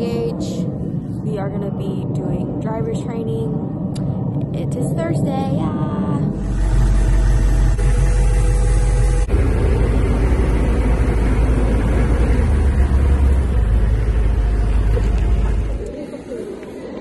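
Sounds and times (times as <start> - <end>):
diesel engine drone: 0.0 - 17.0.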